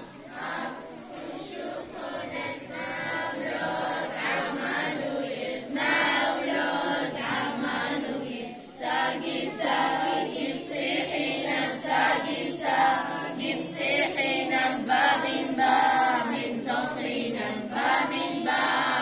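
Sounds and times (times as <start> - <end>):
children singing in chorus: 0.0 - 19.0.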